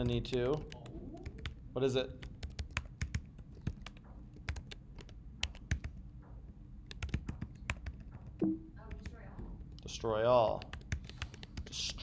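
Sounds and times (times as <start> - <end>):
computer keyboard typing: 0.0 - 6.0, 6.8 - 11.9.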